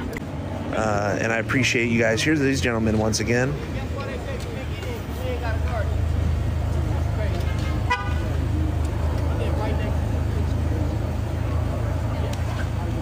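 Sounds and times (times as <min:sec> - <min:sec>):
low rumble of street traffic: 0:00.0 - 0:13.0
voices talking: 0:00.0 - 0:13.0
car horn toot: 0:07.5 - 0:08.4.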